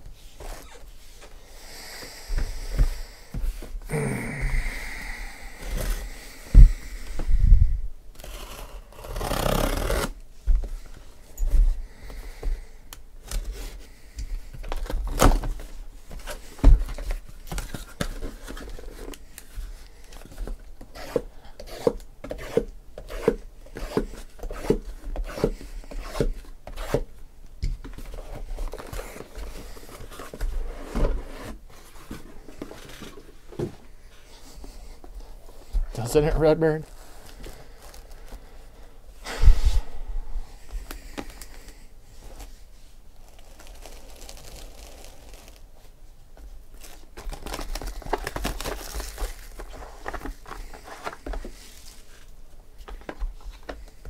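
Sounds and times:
cardboard scraping: 28.0 - 34.8.

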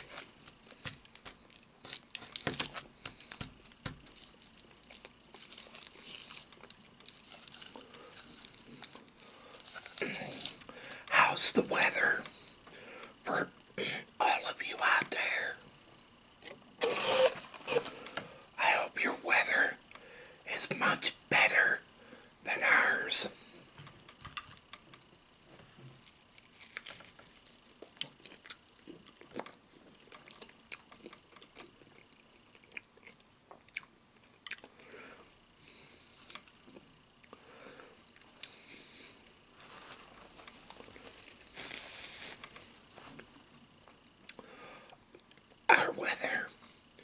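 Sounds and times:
crunching fried chicken: 0.0 - 11.0, 26.0 - 34.8
chewing with small crunches: 23.8 - 34.9.

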